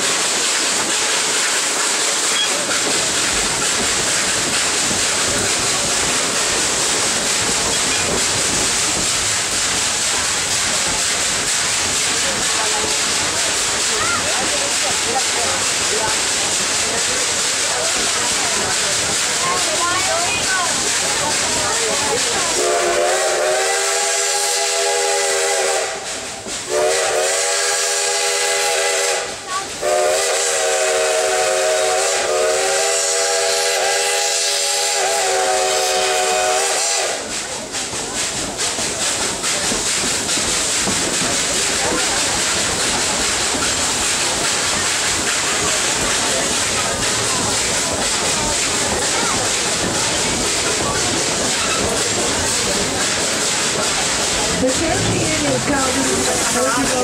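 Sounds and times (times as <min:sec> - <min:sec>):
train running: 0:00.0 - 0:57.0
steam locomotive chime whistle: 0:22.6 - 0:37.3.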